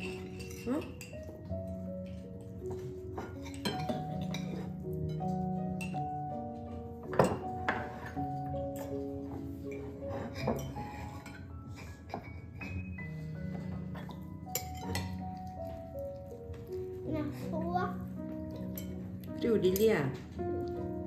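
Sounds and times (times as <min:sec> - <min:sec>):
cutlery clinking on plates: 0:00.0 - 0:09.1, 0:09.7 - 0:16.0
light background music: 0:00.0 - 0:21.0.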